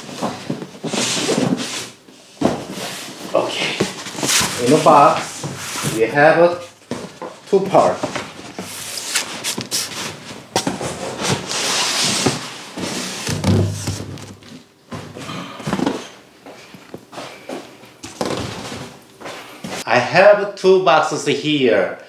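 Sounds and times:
cardboard boxes scraping and rustling: 0:00.0 - 0:06.2, 0:07.8 - 0:14.6.

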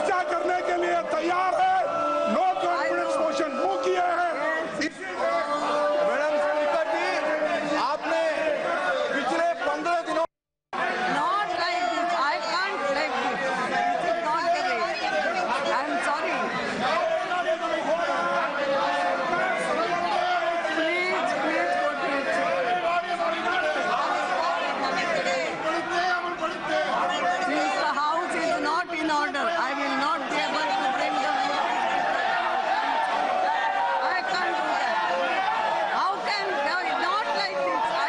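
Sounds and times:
crowd shouting and talking: 0:00.0 - 0:38.0.

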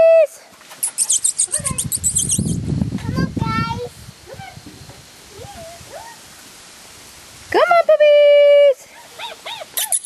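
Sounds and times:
high-pitched squeaks: 0:00.8 - 0:02.6, 0:09.8 - 0:10.0.

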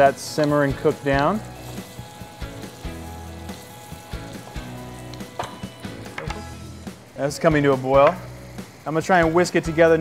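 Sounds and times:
background music: 0:00.0 - 0:10.0
bacon sizzling in a skillet: 0:00.0 - 0:10.0.

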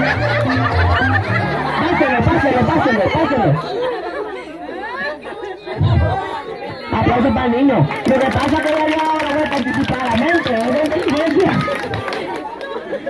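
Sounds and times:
crowd chatter and laughter: 0:00.0 - 0:13.0.

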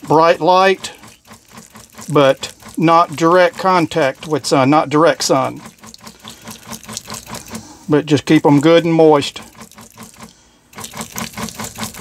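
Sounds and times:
spray bottle spritzing: 0:05.4 - 0:07.7, 0:09.5 - 0:12.0.

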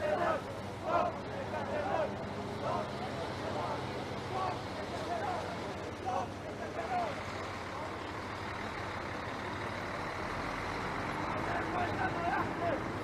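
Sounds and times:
men talking: 0:00.0 - 0:08.1, 0:11.3 - 0:13.0
truck engine running: 0:00.0 - 0:13.0.

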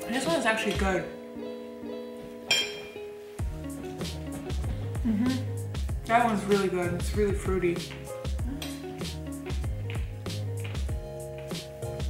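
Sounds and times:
plucked guitar music: 0:00.0 - 0:12.0
fork clinking on plate: 0:02.5 - 0:03.0
bass line: 0:03.4 - 0:12.0.

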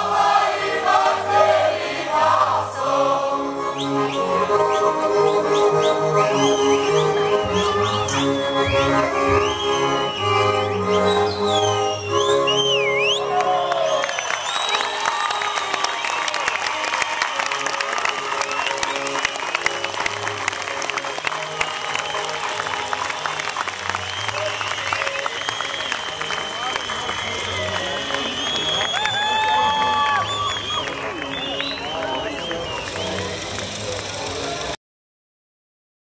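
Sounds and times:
folk string band with fiddles: 0:00.0 - 0:34.8
crowd whistling and cheering: 0:03.6 - 0:34.8
whistles gliding: 0:03.7 - 0:20.2, 0:21.0 - 0:34.3
crowd applauding: 0:04.0 - 0:34.8.

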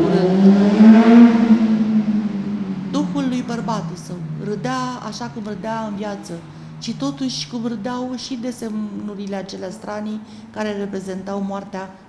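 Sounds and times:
vehicle engine passing by: 0:00.0 - 0:12.0.

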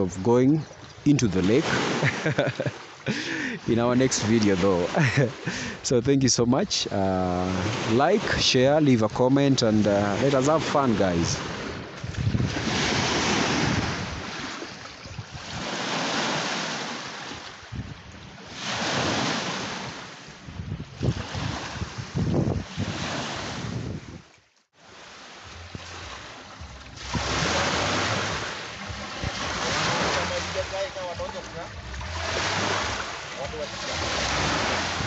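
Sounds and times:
small waves washing onto shore: 0:00.0 - 0:05.9, 0:06.6 - 0:35.0
wind on microphone: 0:09.8 - 0:24.3, 0:25.5 - 0:35.0.

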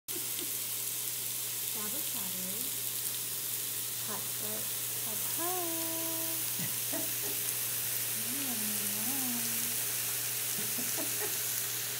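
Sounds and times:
meat sizzling on grill plate: 0:00.1 - 0:11.9.

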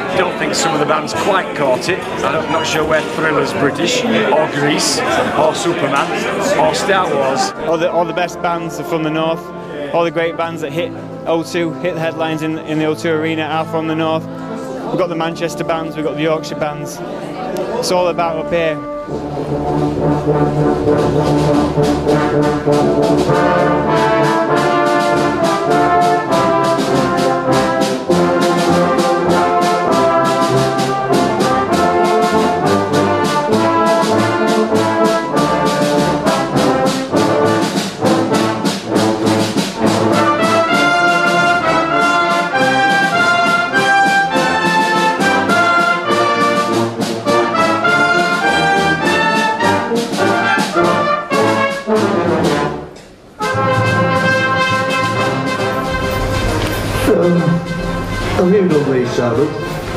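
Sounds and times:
brass band playing: 0:00.0 - 0:59.9.

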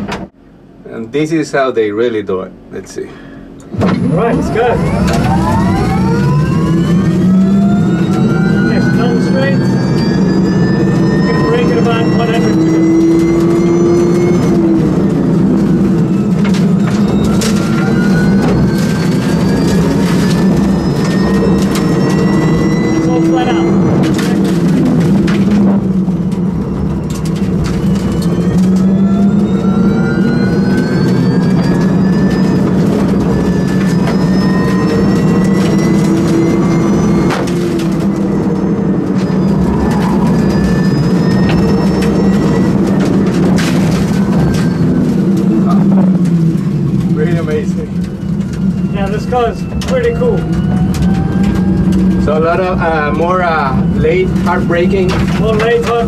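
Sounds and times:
road and tyre rumble: 0:03.5 - 0:56.0
electric motor whine: 0:03.7 - 0:47.2.

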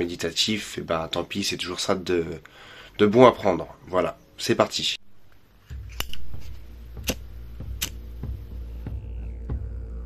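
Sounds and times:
low steady drone: 0:05.0 - 0:10.0
metallic lighter clicks: 0:06.0 - 0:06.3, 0:07.0 - 0:08.0.

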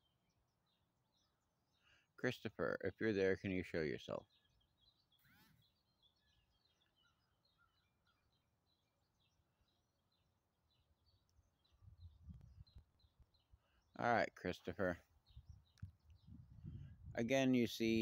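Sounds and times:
faint bird chirps: 0:00.0 - 0:18.0.

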